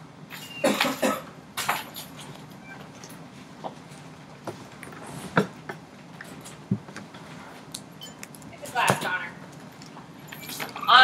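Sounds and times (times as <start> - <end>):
woman speaking: 8.5 - 9.4, 10.8 - 11.0.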